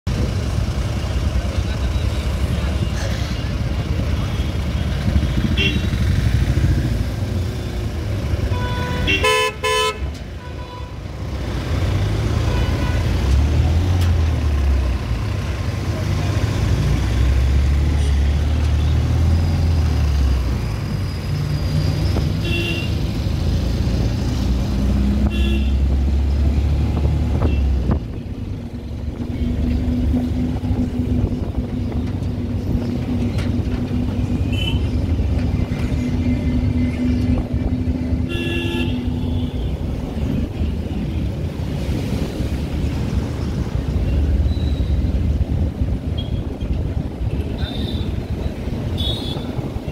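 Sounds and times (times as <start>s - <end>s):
engine and road rumble: 0.0s - 49.9s.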